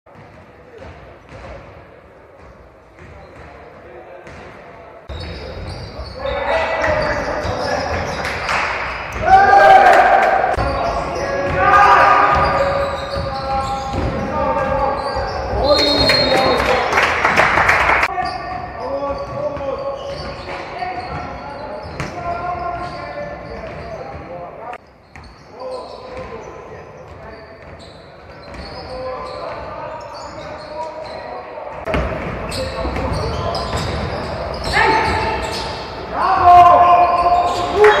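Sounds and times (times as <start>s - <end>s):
basketball bouncing on court: 0.1s - 1.8s, 2.4s - 3.6s, 4.2s - 5.9s, 10.5s - 16.0s, 18.2s - 22.2s, 31.8s - 35.6s
players' voices: 0.1s - 38.0s
players shouting: 6.1s - 17.0s, 34.6s - 38.0s
loud drawn-out shout: 9.2s - 10.6s, 36.1s - 38.0s.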